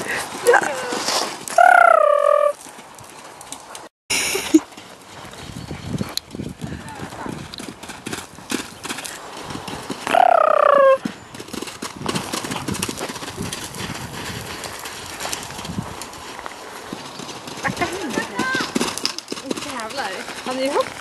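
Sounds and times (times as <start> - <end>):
pony call: 1.5 - 2.6, 10.0 - 11.4
hoofbeats on sand: 2.6 - 21.0.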